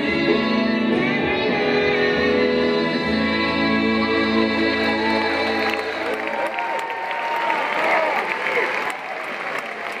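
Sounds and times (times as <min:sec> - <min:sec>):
audience applauding and cheering: 0:04.6 - 0:10.0
voices whooping: 0:05.0 - 0:09.2.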